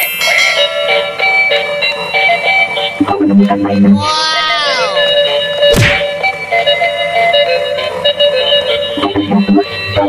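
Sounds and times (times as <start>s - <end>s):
music playing: 0.6s - 10.0s.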